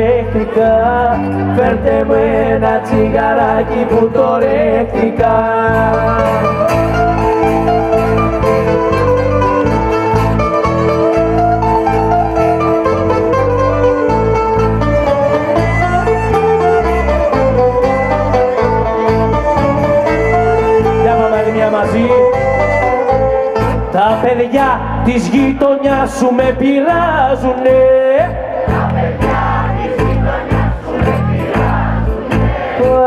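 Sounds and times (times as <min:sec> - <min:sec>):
strummed acoustic guitar: 0:00.0 - 0:24.5
pulsing bass: 0:00.0 - 0:33.0
bouzouki melody: 0:00.1 - 0:25.1.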